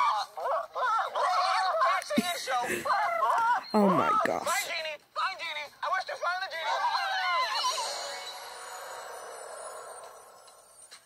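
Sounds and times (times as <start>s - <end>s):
shimmering chime-like magic effect: 7.6s - 11.0s.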